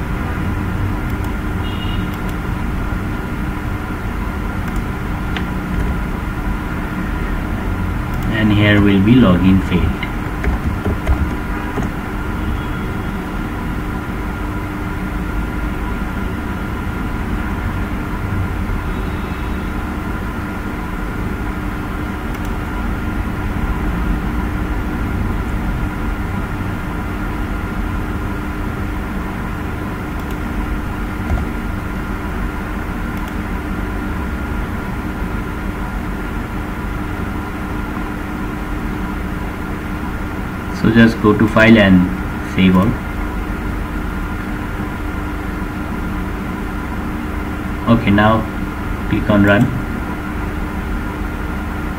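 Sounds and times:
low hum and hiss: 0.0 - 51.9.

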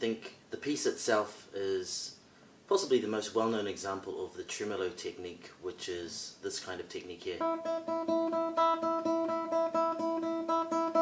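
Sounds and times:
classical guitar tremolo: 7.4 - 11.0.

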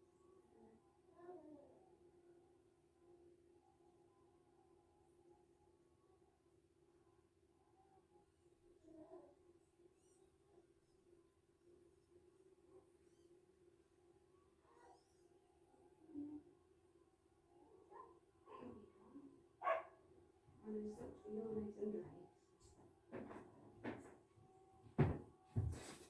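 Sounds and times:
faint room hum: 0.0 - 26.0.

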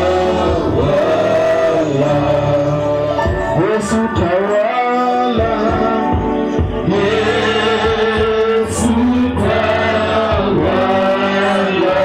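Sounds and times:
gospel worship music: 0.0 - 12.0.

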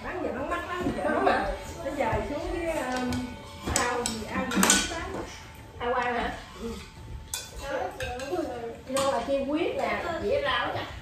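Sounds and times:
people talking: 0.0 - 6.8, 7.5 - 11.0
spoon clinking against bowl: 2.9 - 5.0, 7.2 - 9.2.

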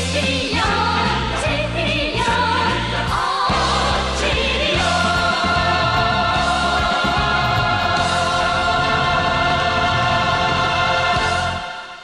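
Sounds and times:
choir singing sustained chord: 0.5 - 12.0.

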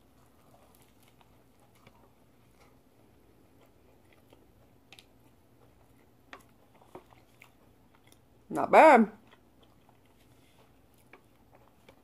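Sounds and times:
faint chewing: 0.0 - 8.5, 9.2 - 12.0.

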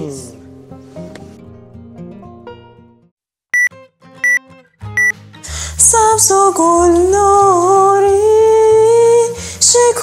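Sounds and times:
short loud electronic beep: 3.6 - 4.4.

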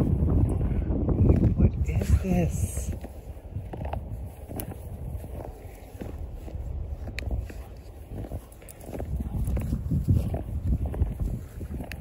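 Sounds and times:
dog paws crunching in snow: 1.3 - 12.0
footsteps in snow: 1.3 - 12.0.

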